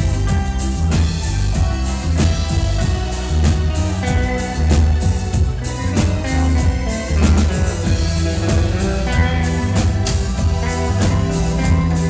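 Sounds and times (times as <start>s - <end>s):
drum kit: 0.0s - 12.0s
electric guitar playing: 0.0s - 12.0s
low bass line: 0.0s - 12.0s.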